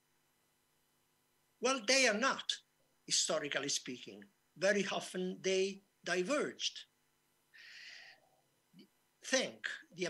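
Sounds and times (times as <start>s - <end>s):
man talking: 1.6s - 6.9s, 9.2s - 10.0s
man breathing in: 7.5s - 8.4s.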